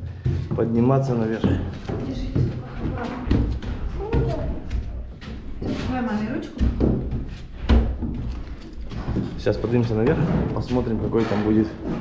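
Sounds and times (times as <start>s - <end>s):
footsteps on staircase: 0.0s - 12.0s.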